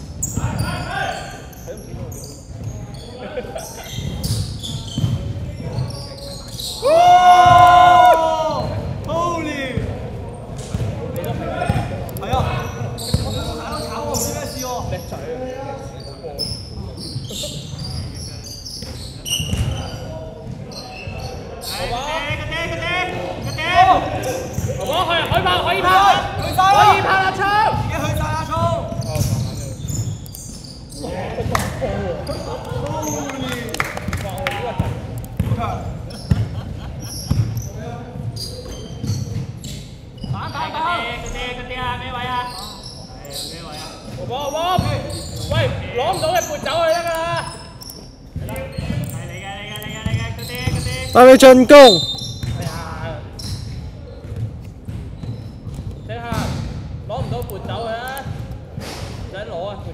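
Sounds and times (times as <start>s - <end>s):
basketball bouncing on wooden court: 4.0s - 6.0s, 9.8s - 13.6s, 18.8s - 20.7s, 34.8s - 40.4s, 50.0s - 51.0s, 52.1s - 52.8s, 53.4s - 57.4s
players calling out: 50.0s - 52.2s.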